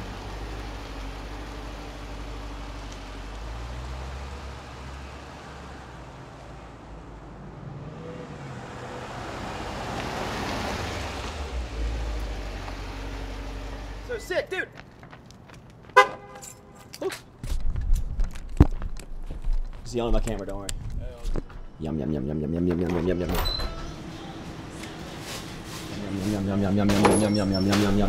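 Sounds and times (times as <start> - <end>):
car engine pulling away: 0.0 - 14.1
vehicle driving past: 0.0 - 14.1
street noise: 0.0 - 28.0.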